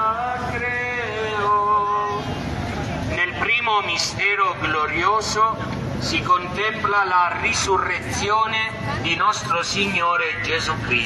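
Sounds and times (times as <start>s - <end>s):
man speaking over loudspeakers: 3.0s - 11.0s.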